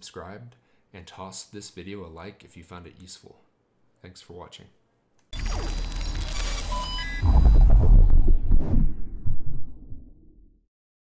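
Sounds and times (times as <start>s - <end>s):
short high beeps: 5.6s - 7.6s
low rumble: 6.8s - 10.6s
deep bass hit: 7.2s - 10.4s.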